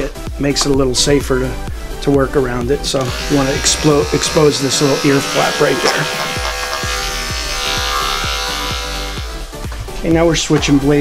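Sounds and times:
background music with beat: 0:00.0 - 0:11.0
electric clippers buzzing: 0:03.0 - 0:09.6.

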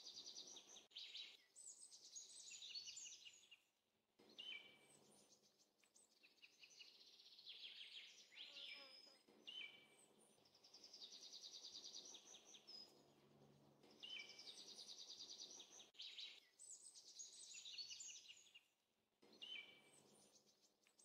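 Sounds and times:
faint birdsong: 0:00.0 - 0:21.0.

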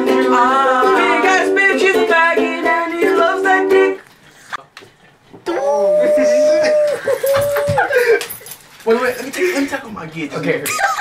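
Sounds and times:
person whining: 0:05.5 - 0:08.2.

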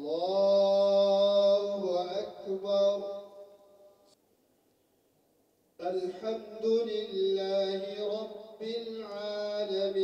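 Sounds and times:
man chanting prayer call: 0:00.0 - 0:03.8, 0:05.8 - 0:10.0.

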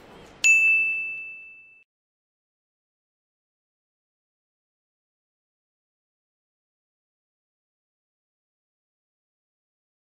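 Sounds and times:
bright ding: 0:00.4 - 0:01.9.

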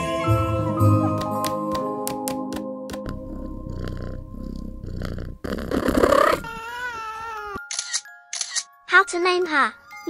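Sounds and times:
cat purring: 0:03.1 - 0:06.4.

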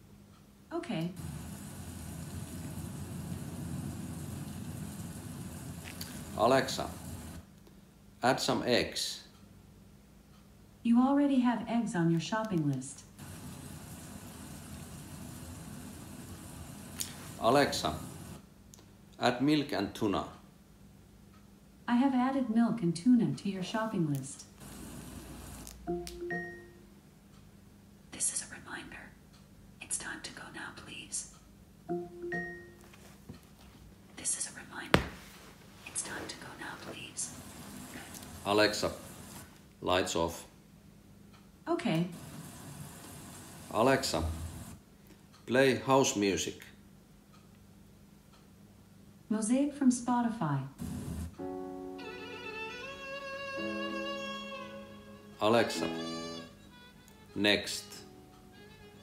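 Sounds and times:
soft rustling: 0:32.8 - 0:34.2, 0:34.8 - 0:37.4.

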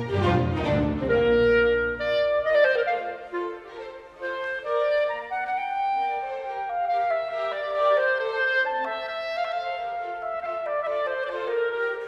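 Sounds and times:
orchestra low heavy sound: 0:00.0 - 0:02.6
solo clarinet melody: 0:00.0 - 0:12.0.

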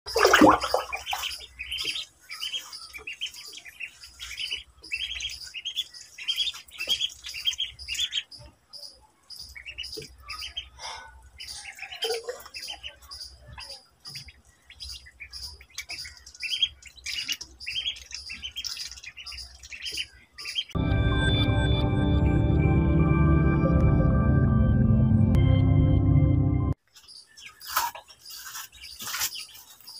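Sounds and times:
ducklings peeping: 0:00.1 - 0:20.8, 0:27.0 - 0:29.9.

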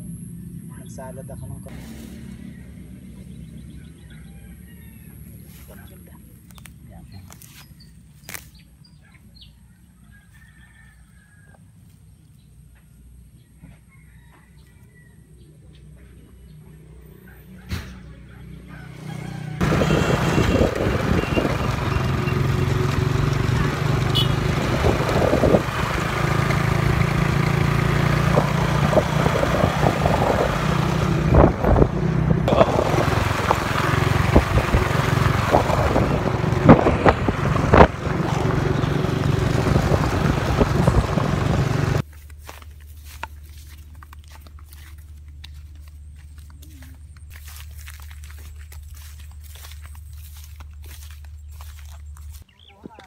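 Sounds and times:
wind rumble on microphone: 0:19.6 - 0:21.8, 0:24.6 - 0:25.9, 0:28.2 - 0:42.0.

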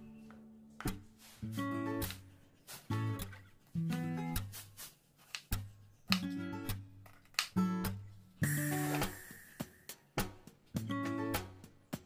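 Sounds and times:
plucked acoustic guitar: 0:07.8 - 0:11.7.

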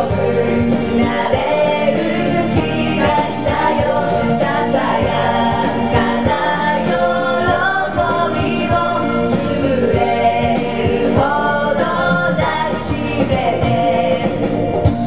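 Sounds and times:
backing track with steady beat: 0:00.0 - 0:15.0
women singing karaoke: 0:00.0 - 0:15.0.

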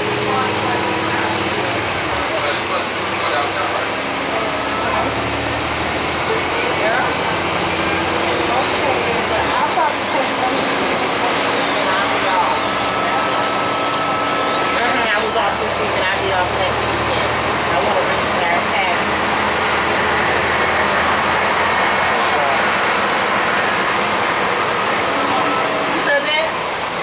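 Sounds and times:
bus diesel engine running: 0:00.0 - 0:27.0
road noise: 0:00.0 - 0:27.0
voices talking: 0:00.0 - 0:27.0.

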